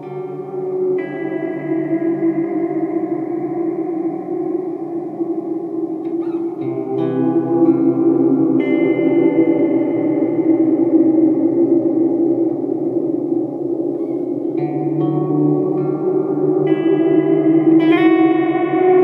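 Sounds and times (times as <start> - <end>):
electric guitar with long reverb: 0.0 - 19.0.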